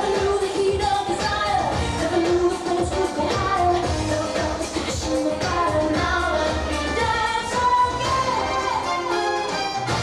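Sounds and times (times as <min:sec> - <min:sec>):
song with singer: 0:00.0 - 0:10.0.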